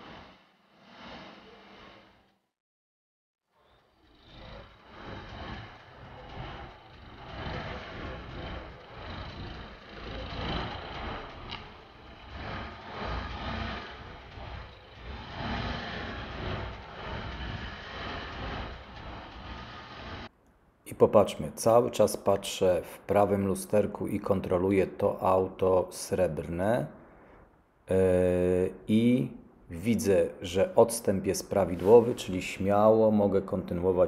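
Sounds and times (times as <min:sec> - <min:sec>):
outdoor street noise: 0:00.0 - 0:02.5, 0:03.5 - 0:20.8
car engine running at low speed: 0:03.6 - 0:20.3.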